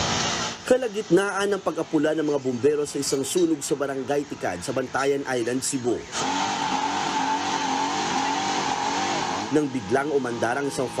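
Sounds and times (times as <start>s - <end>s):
loud hiss: 0.0s - 3.2s
truck engine droning whine: 0.0s - 11.0s.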